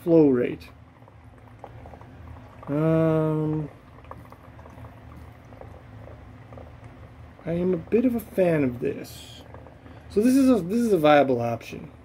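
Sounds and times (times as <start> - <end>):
water trickling into basin: 0.2 - 11.8.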